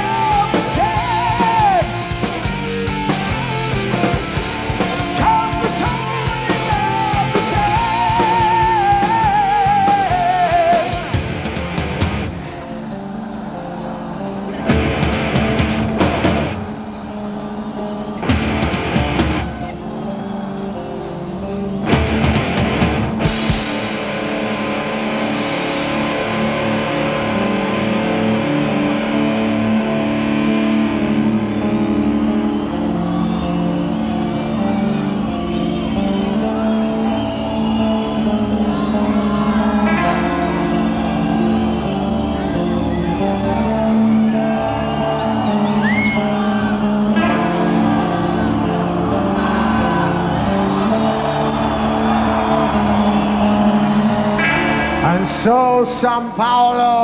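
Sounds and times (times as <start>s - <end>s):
distorted guitar and bass droning: 0.0s - 57.0s.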